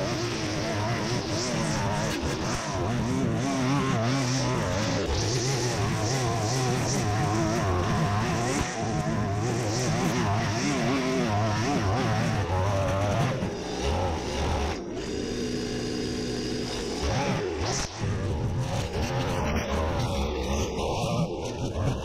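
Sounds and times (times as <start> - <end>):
string trimmer cutting grass: 0.0 - 22.0.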